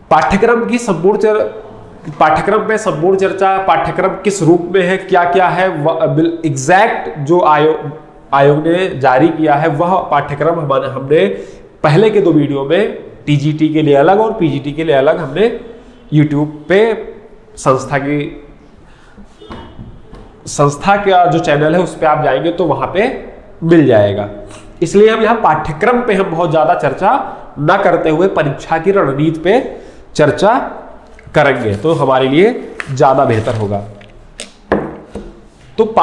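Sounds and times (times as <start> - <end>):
man speaking: 0.0 - 18.6, 20.4 - 34.1, 35.8 - 36.0
objects knocking on desk: 34.7 - 35.4.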